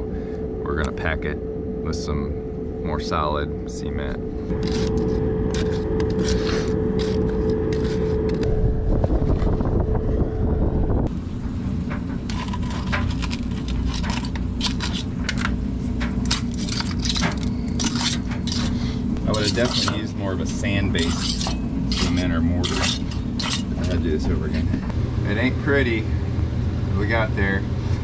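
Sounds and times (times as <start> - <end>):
steady hum: 0.0 - 28.0
cement scraping and crunching: 4.5 - 8.5, 12.2 - 24.8.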